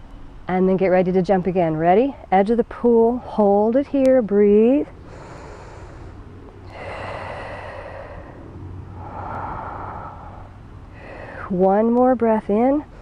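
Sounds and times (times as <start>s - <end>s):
woman breathing deeply: 5.0s - 11.5s.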